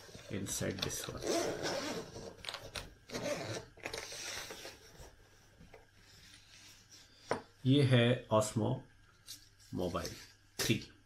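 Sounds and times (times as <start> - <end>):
case zipper pulled open: 1.2 - 2.4, 3.1 - 4.7.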